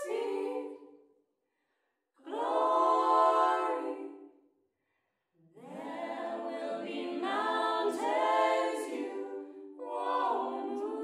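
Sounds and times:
choir singing held chords: 0.0s - 0.9s, 2.2s - 4.3s, 5.6s - 11.0s.

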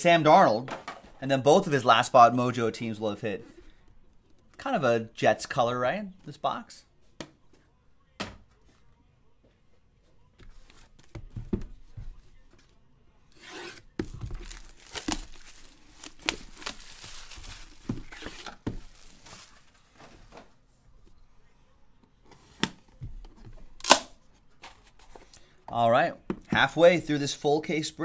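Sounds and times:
plastic wrapping tearing and crinkling: 13.6s - 19.8s.

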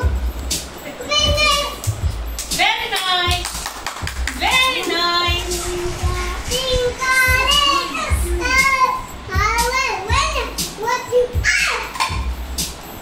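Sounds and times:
low thuds and rumble: 4.1s - 10.4s
child singing: 5.3s - 11.9s.

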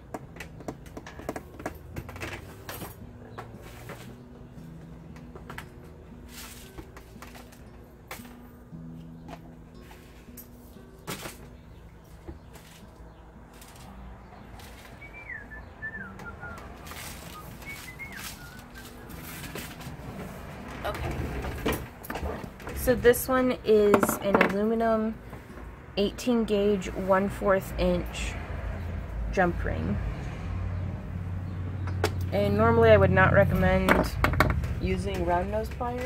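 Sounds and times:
rustling and handling noise: 0.3s - 15.4s, 16.0s - 23.2s
bird chirping: 11.6s - 19.4s.

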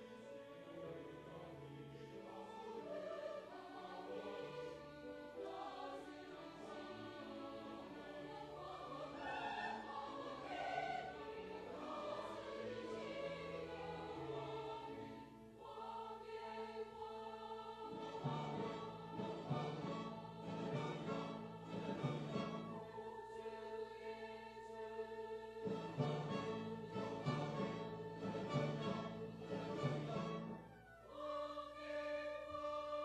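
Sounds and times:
choir singing: 0.0s - 33.0s.

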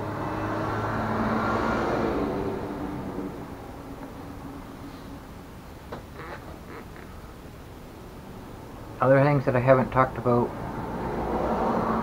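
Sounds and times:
motor vehicle driving past: 0.0s - 5.1s, 10.6s - 12.0s.

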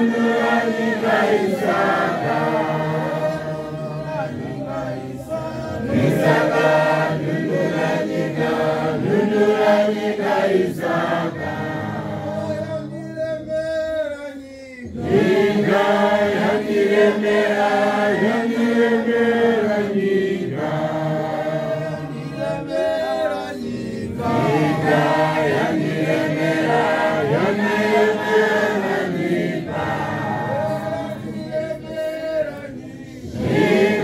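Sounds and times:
choir chanting a hymn: 0.0s - 13.6s, 14.8s - 34.0s.

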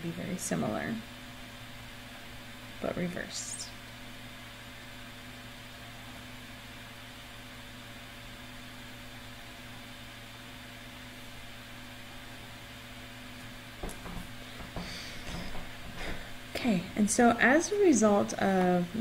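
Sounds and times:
electrical hum: 0.0s - 19.0s
faint knocks: 13.8s - 16.3s.

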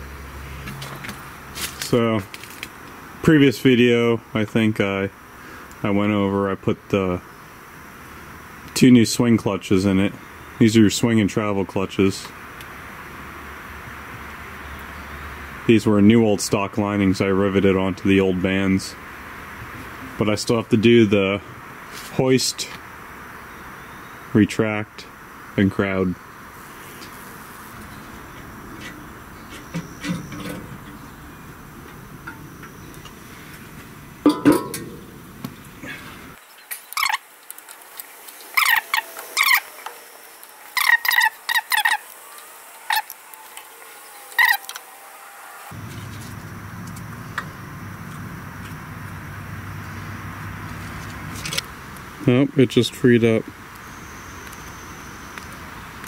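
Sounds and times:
low background noise: 0.0s - 56.0s.

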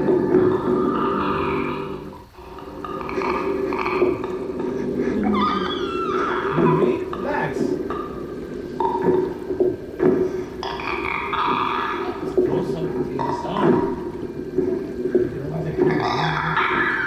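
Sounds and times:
creature-like vocal noises: 0.0s - 17.0s
low steady drone: 0.0s - 17.0s.

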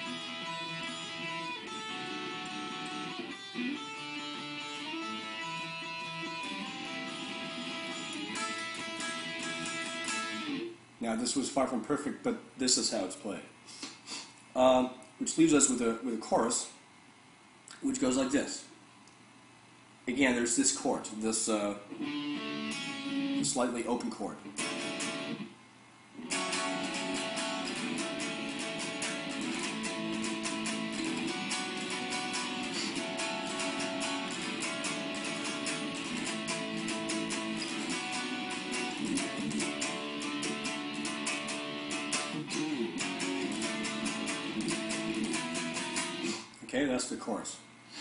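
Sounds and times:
guitar strumming: 0.0s - 10.8s, 21.9s - 25.5s, 26.2s - 46.6s.

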